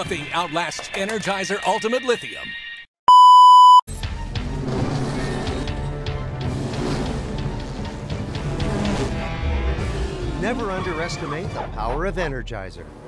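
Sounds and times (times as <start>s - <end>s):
broadcast test tone beep: 3.1s - 3.8s
background music with percussive hits: 4.0s - 10.7s.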